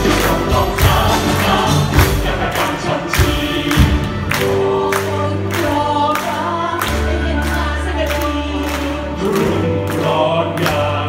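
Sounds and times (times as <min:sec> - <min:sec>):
sharp percussion hits: 0:00.0 - 0:04.7
group of singers: 0:00.0 - 0:11.0
orchestra playing: 0:00.0 - 0:11.0.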